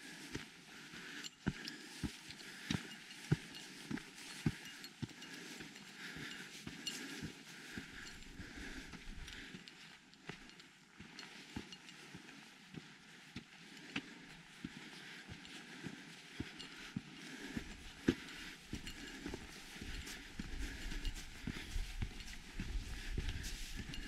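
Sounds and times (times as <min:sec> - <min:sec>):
footsteps on dirt trail: 0:00.0 - 0:24.0.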